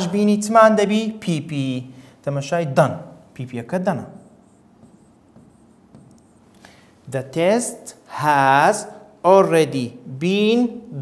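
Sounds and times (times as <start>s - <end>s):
pen writing on screen: 4.2s - 6.6s
light pen taps: 4.8s - 6.3s.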